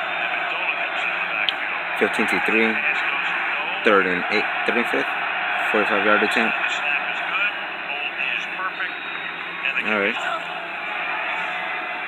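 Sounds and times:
sports commentator talking: 0:00.0 - 0:10.5
stadium crowd noise: 0:00.0 - 0:12.0
man speaking: 0:00.5 - 0:05.1, 0:05.7 - 0:08.9, 0:09.6 - 0:10.3.

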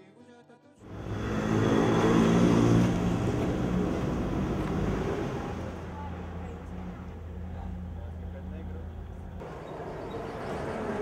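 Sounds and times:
vehicle engine passing: 0:00.9 - 0:11.0.

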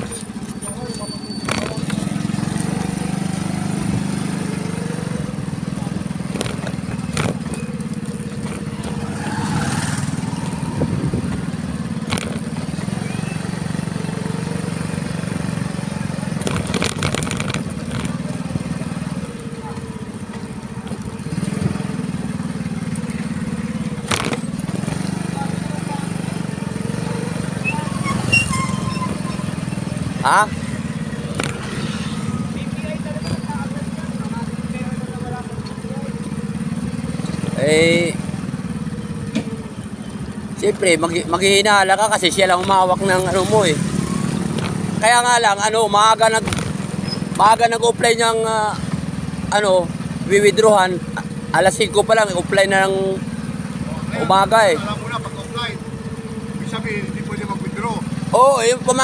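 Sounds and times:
vehicle humming on road: 0:00.0 - 0:59.0.

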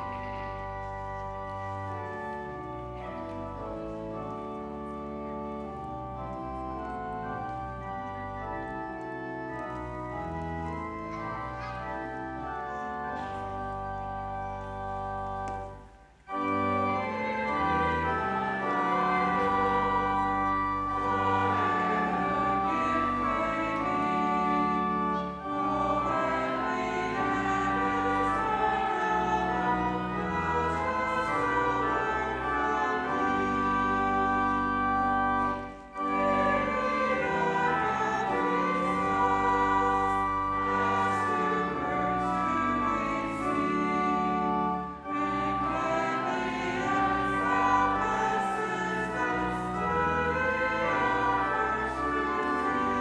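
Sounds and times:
organ playing a hymn: 0:00.0 - 0:53.0.

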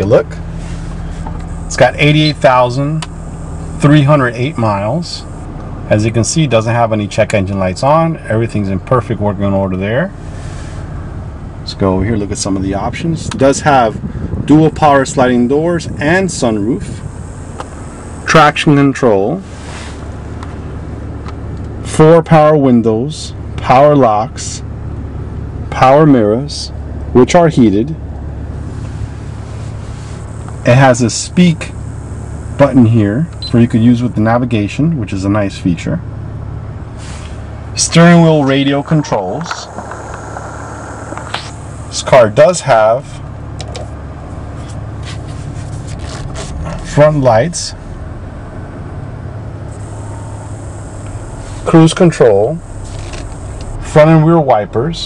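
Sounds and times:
car engine idling: 0:00.0 - 0:55.0.

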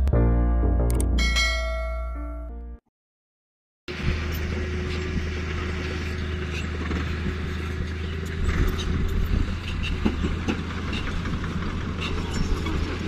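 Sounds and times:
dump truck diesel engine rumbling: 0:03.9 - 0:13.0.

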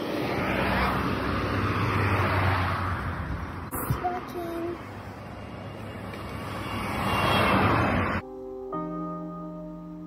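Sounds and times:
outdoor rushing noise: 0:00.0 - 0:04.1
soft piano music: 0:08.2 - 0:10.0.

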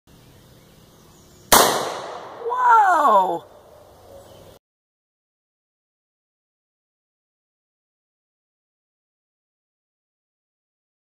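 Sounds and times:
rifle shot with echo: 0:01.5 - 0:02.4.

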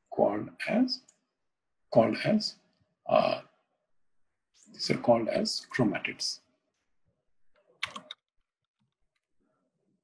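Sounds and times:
typing on computer keyboard: 0:07.8 - 0:08.2.

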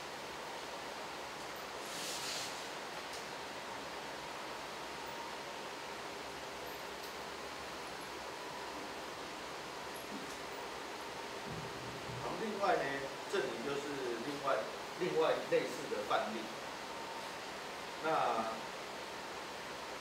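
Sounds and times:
room hiss: 0:00.0 - 0:20.0
short rustle: 0:01.8 - 0:02.7.

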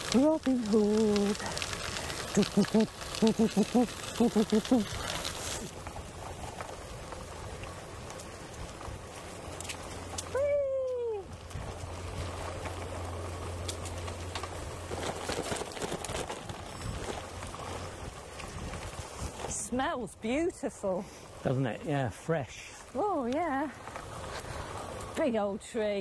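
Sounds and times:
tyres rolling on gravel: 0:00.0 - 0:26.0.

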